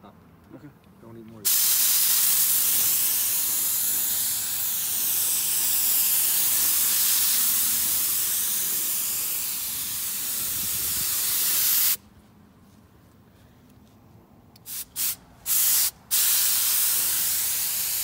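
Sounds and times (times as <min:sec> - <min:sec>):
paint spray gun hissing: 0:01.5 - 0:12.0, 0:14.7 - 0:18.0.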